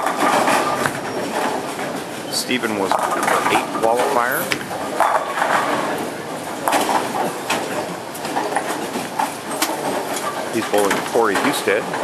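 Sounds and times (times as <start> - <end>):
bowling balls rolling: 0.0 - 12.0
bowling pins crashing: 0.0 - 12.0.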